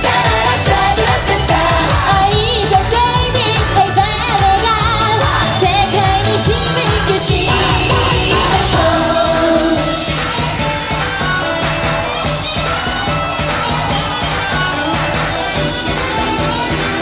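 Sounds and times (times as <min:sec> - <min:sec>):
women singing into microphones: 0:00.0 - 0:10.3
upbeat pop backing track: 0:00.0 - 0:17.0.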